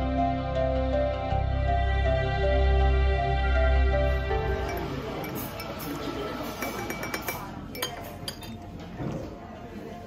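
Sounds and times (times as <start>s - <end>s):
teaspoon clinking in a cup: 4.6s - 8.7s.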